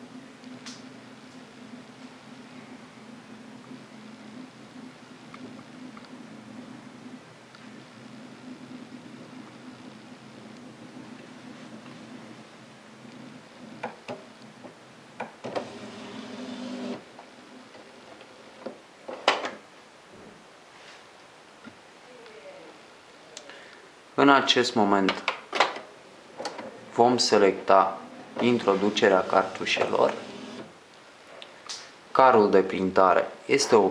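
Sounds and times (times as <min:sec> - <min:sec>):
printer motor hum: 0:15.4 - 0:17.0, 0:28.2 - 0:30.7
print-head carriage whirring: 0:15.5 - 0:17.0, 0:28.3 - 0:30.7.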